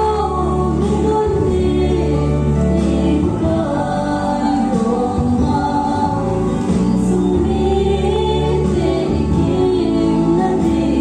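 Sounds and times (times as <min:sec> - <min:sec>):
woman singing a gospel song: 0:00.0 - 0:11.0.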